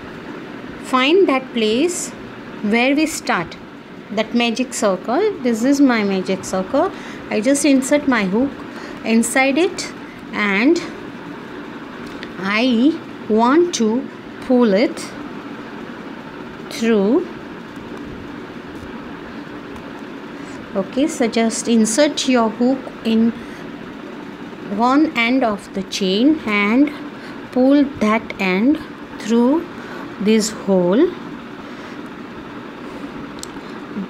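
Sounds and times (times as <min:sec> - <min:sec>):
steady background hiss: 0:00.0 - 0:34.0
steady background hum: 0:00.0 - 0:34.0.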